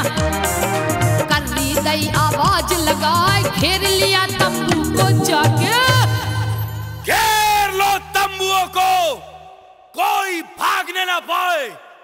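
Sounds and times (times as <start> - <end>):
man shouting drawn-out calls: 7.0 - 12.0.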